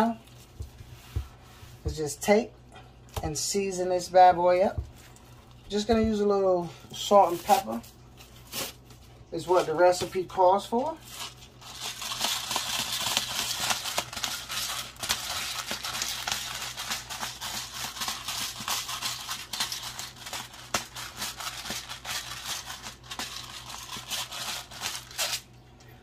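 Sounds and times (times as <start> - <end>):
pepper mill grinding: 10.6 - 25.5.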